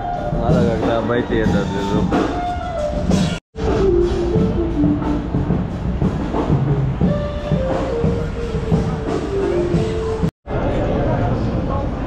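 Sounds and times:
music with stepping melody: 0:02.3 - 0:10.3.

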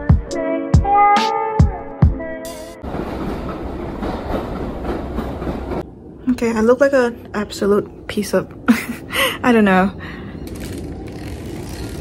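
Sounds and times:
background music beat: 0:00.0 - 0:02.8
steady rumbling noise with hiss: 0:05.8 - 0:12.0.

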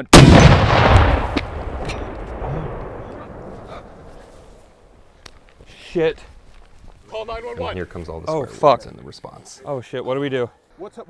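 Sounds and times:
rocket launcher blast: 0:00.1 - 0:03.5
rumbling echo: 0:00.2 - 0:04.4.

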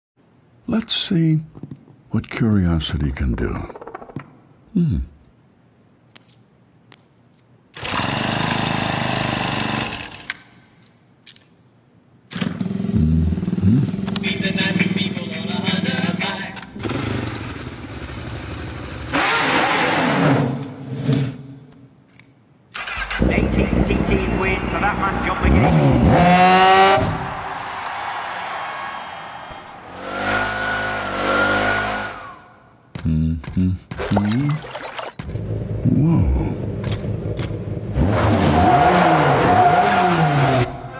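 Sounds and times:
vehicle engines revving: 0:12.4 - 0:16.2, 0:16.8 - 0:20.4, 0:22.8 - 0:27.4, 0:29.8 - 0:32.4, 0:36.6 - 0:40.9.

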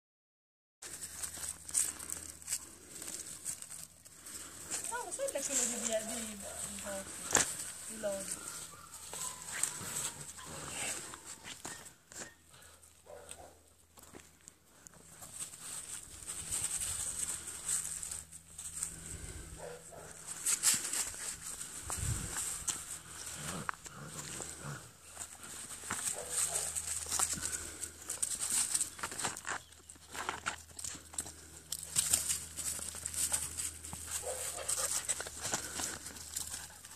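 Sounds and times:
dry leaves rustling and crackling: 0:00.8 - 0:11.8, 0:13.4 - 0:36.9.

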